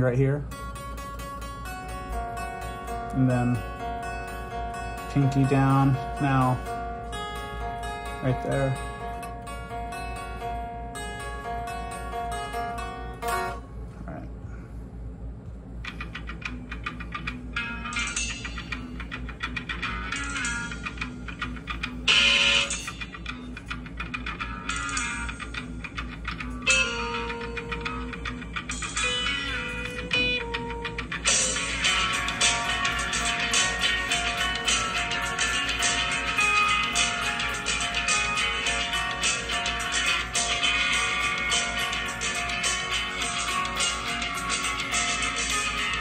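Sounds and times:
electric guitar lead lick: 0.0s - 13.6s, 15.8s - 46.0s
steady low hum: 0.0s - 46.0s.

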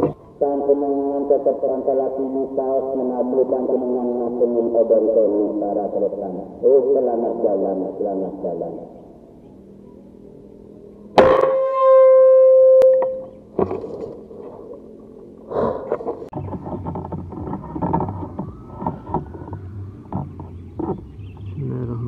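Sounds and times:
air rifle shot: 11.2s - 11.8s.

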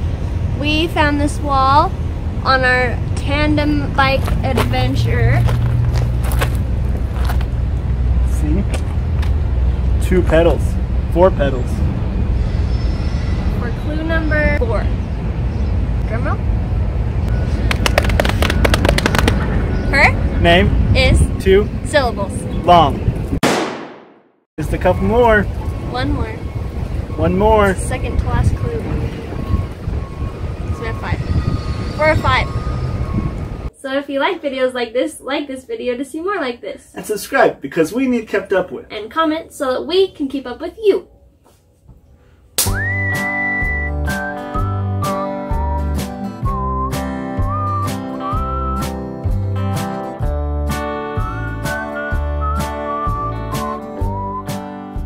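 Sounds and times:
rapid sharp claps or slaps: 17.6s - 19.5s
whistled melody: 28.0s - 33.6s, 42.6s - 49.4s, 51.1s - 55.0s.

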